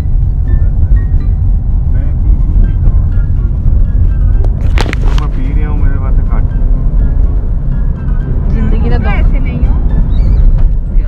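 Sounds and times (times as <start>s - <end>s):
car road and engine rumble: 0.0s - 11.0s
music in car: 0.0s - 11.0s
brief rustle: 4.6s - 5.4s.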